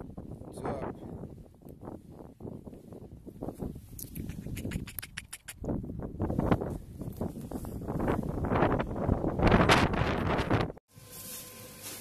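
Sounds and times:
wind buffeting microphone: 0.0s - 10.8s.

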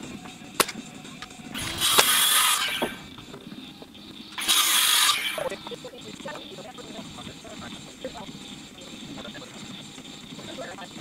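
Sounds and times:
sharp crack: 0.5s - 3.2s, 4.4s - 5.6s
power tool running hard: 1.6s - 11.0s.

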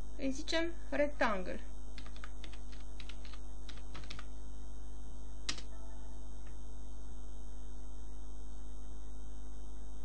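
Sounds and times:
steady low hum: 0.0s - 10.0s
keyboard typing: 2.0s - 4.3s, 5.5s - 5.7s.

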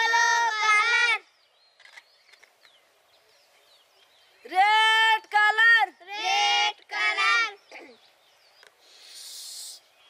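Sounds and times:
breathy hiss blowing balloon: 8.8s - 10.0s.

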